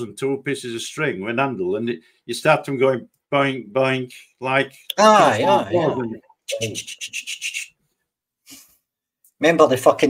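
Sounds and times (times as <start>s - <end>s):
man imitating clackers with mouth: 6.5s - 7.7s.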